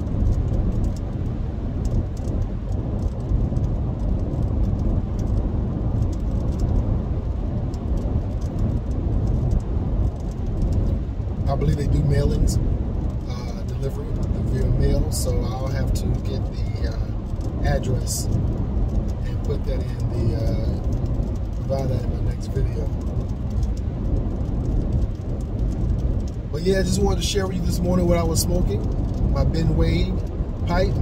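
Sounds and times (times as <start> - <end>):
car road and engine rumble: 0.0 - 31.0
man talking: 11.5 - 12.6, 13.3 - 18.3, 19.2 - 20.8, 21.6 - 23.0, 26.5 - 31.0.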